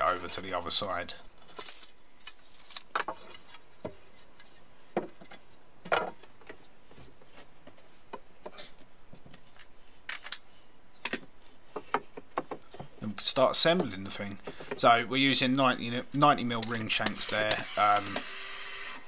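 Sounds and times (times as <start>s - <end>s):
tools and timber clicks and knocks: 2.9s - 10.4s, 11.0s - 13.0s.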